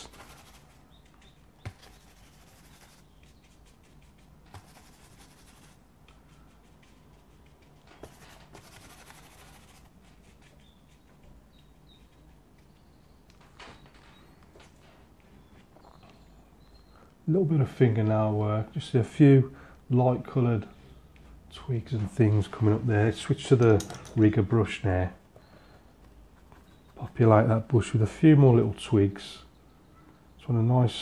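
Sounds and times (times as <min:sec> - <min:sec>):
brush bristles on paper: 0:00.0 - 0:11.2
low room hum: 0:00.0 - 0:31.0.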